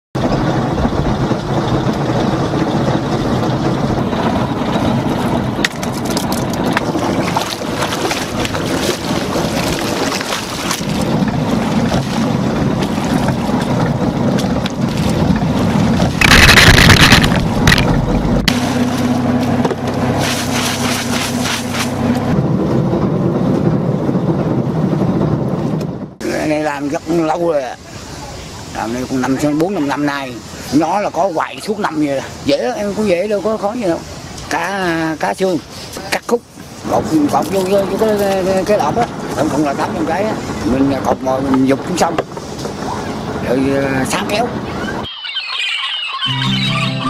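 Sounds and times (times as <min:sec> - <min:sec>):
water noise: 0:00.1 - 0:47.0
loud rush of noise: 0:00.2 - 0:38.0
boat engine running: 0:00.2 - 0:45.1
wind on microphone: 0:00.2 - 0:45.1.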